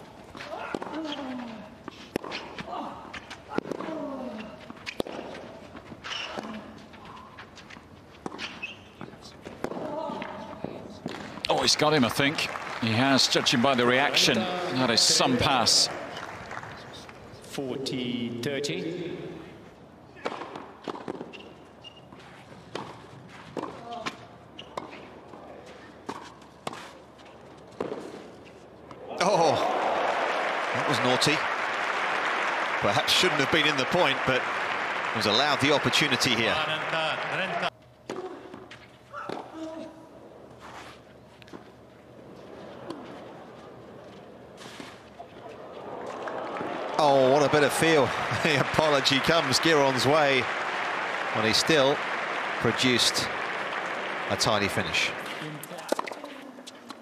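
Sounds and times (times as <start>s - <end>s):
racket striking tennis ball: 1.9s - 2.7s, 4.8s - 5.4s, 55.2s - 56.3s.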